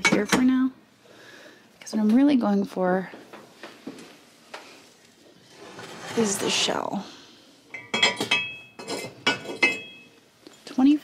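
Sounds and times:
ceramic pottery clinking: 7.7 - 10.2.

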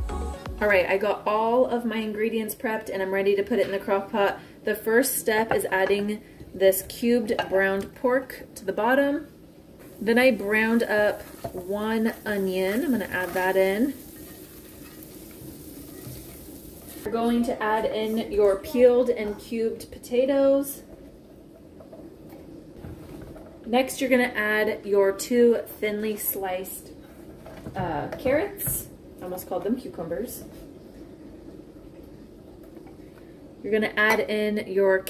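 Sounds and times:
low steady hum: 0.0 - 35.0.

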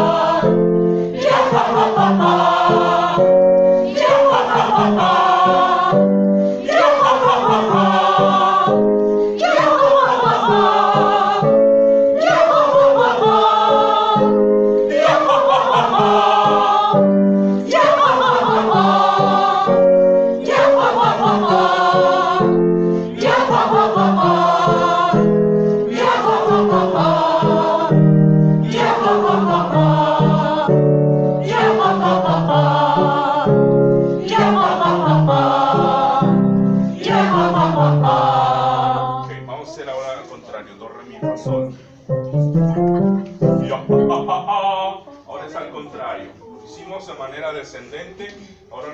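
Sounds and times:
group singing vocal warm-up: 0.0 - 40.2, 41.2 - 45.6.

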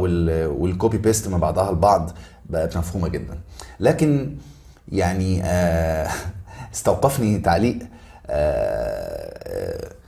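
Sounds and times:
man's croaky drawn-out vocal sound: 8.2 - 10.0.

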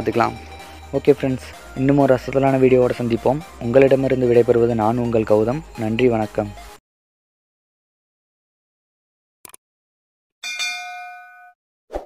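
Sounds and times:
bright bell-like ding: 10.4 - 11.6.

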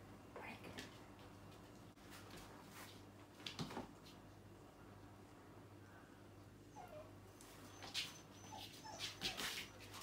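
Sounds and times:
puppy whimpering: 6.7 - 10.0.

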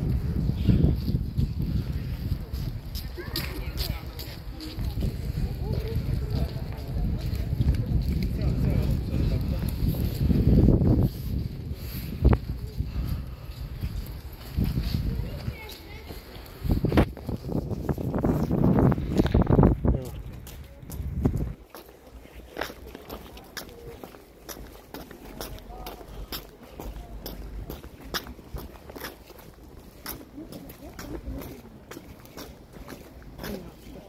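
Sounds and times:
footsteps on stone paving: 0.0 - 34.0
people talking: 1.7 - 10.5, 14.7 - 17.0, 19.8 - 28.5, 30.0 - 32.1, 32.7 - 34.0.

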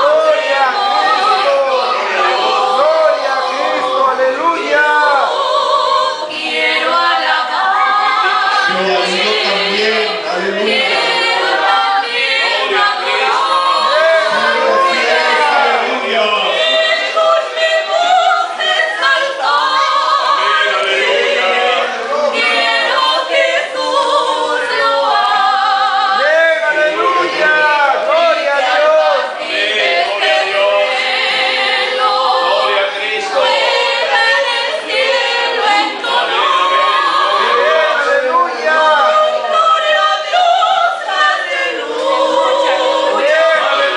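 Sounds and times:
women singing a cappella duet: 0.0 - 15.9, 16.5 - 26.3, 28.6 - 43.9.

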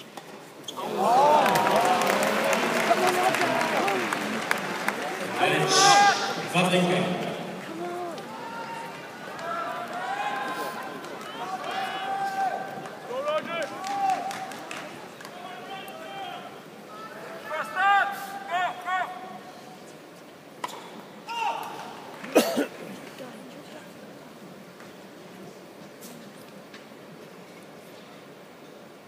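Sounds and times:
crowd talking: 0.7 - 20.1.

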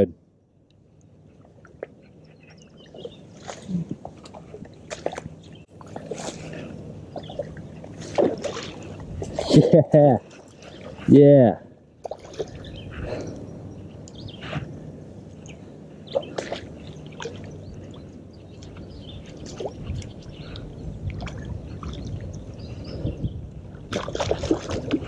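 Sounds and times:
water sloshing and dripping: 1.0 - 9.6, 12.0 - 12.8, 15.3 - 22.7, 23.7 - 25.0
fish thrashing in water: 7.2 - 9.5, 23.8 - 25.0.

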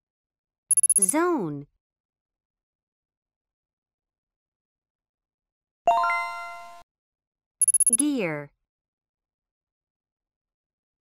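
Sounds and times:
short high beeps: 0.7 - 1.2, 7.6 - 8.1
person speaking: 0.9 - 1.6, 7.8 - 8.5
bright electronic chime: 5.9 - 6.8.

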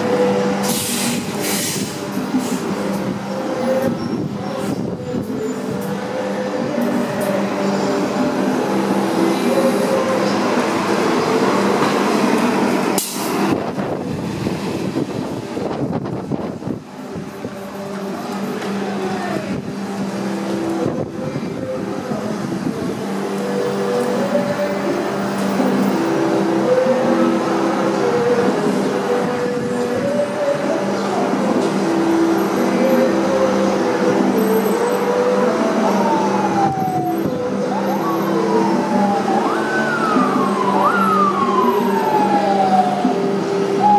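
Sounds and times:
emergency vehicle siren: 0.0 - 16.2, 23.0 - 43.9
city traffic engines: 0.0 - 43.9.

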